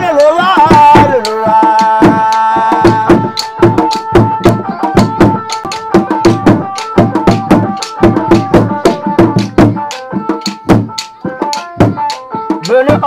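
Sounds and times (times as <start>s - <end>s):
fast hand-drumming: 0.0s - 13.0s
held melodic line: 0.0s - 13.0s.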